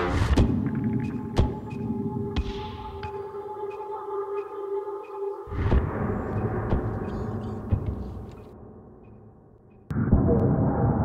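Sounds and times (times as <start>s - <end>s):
music: 0.0s - 10.1s.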